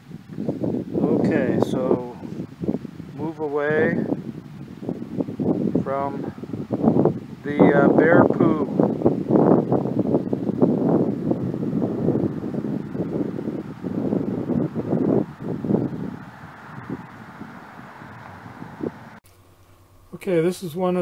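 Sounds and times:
wind buffeting microphone: 0:00.0 - 0:19.2.

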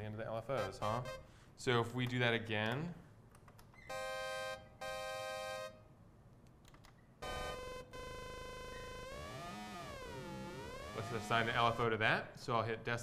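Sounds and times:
buzzy synthesizer tone: 0:00.6 - 0:01.3, 0:03.9 - 0:05.8, 0:07.2 - 0:12.0.

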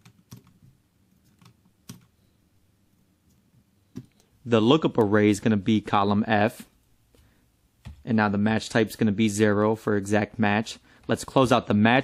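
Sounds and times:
keyboard and mouse clicks: 0:00.0 - 0:02.2.

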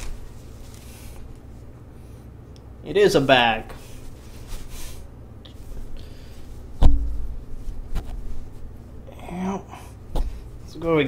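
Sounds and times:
fabric bag handling rumble: 0:00.0 - 0:01.4
sharp loud thump: 0:06.8 - 0:07.4.

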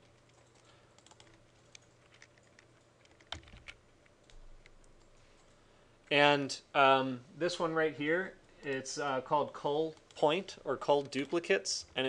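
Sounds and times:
computer keyboard typing: 0:00.0 - 0:05.6.

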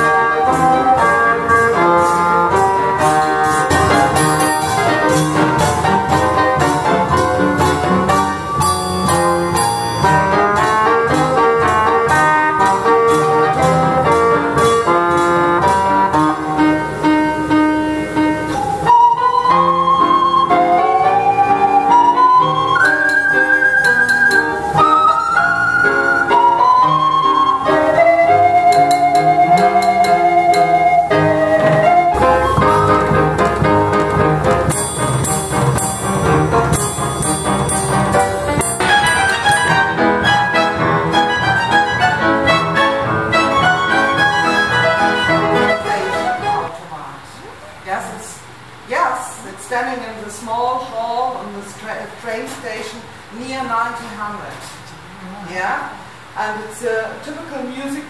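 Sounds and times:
drum and cymbal strokes: 0:00.0 - 0:20.2, 0:32.1 - 0:46.6
mechanical music instrument tune: 0:00.0 - 0:46.7.

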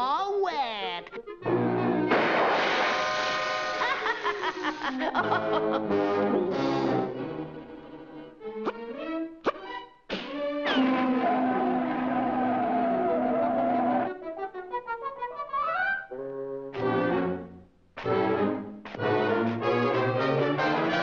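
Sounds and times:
orchestral cartoon music with brass: 0:01.3 - 0:04.1, 0:05.2 - 0:21.0.

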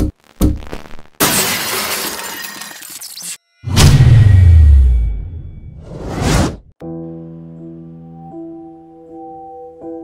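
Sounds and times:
glass breaking: 0:01.2 - 0:03.8
loud impact with deep boom: 0:03.7 - 0:05.7.

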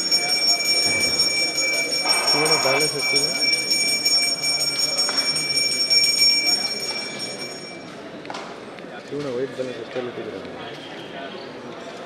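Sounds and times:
hand bell ringing: 0:00.0 - 0:07.9
faint voices: 0:00.0 - 0:12.0.

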